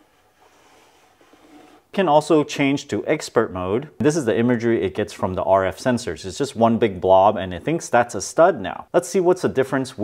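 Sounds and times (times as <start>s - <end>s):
faint low hiss: 0.0s - 10.0s
man's voice: 2.0s - 10.0s.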